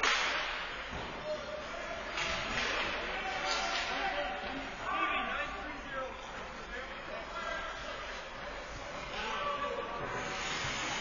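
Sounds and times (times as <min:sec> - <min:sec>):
hockey stick striking puck: 0:00.0 - 0:00.6
hiss of skates on ice: 0:10.1 - 0:11.0.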